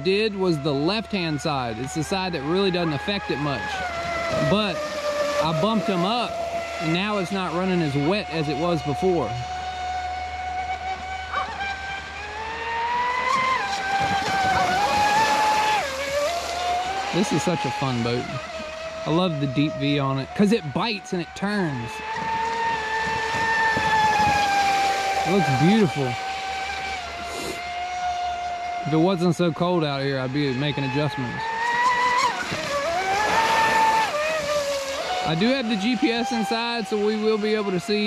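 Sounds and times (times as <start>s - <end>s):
rc boat motor whining: 0.0s - 38.0s
hull hissing through water: 9.0s - 19.0s, 22.0s - 28.3s.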